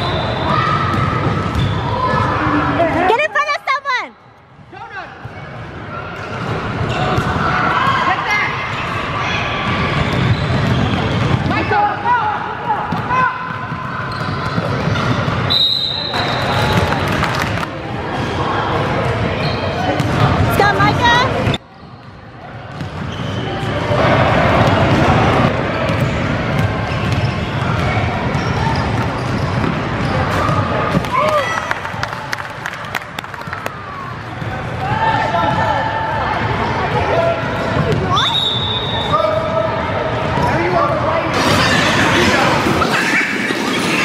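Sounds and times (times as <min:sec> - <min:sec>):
voices echoing in a hall: 0:00.0 - 0:44.0
short whistle blast: 0:15.5 - 0:16.8, 0:38.2 - 0:39.2.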